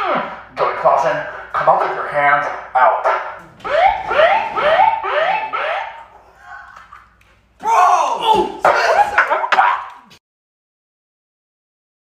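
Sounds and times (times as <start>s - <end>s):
megaphone siren whoop: 3.6s - 6.0s.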